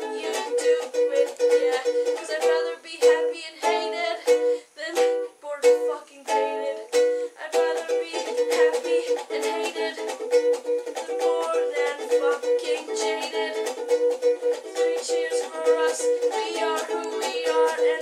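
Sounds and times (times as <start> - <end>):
ukulele strumming chords: 0.0 - 18.0.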